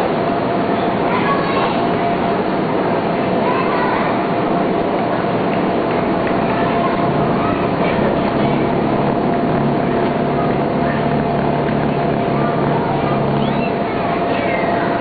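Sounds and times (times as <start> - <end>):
low hum: 1.8 - 15.0
air blower rushing and whining: 4.2 - 15.0.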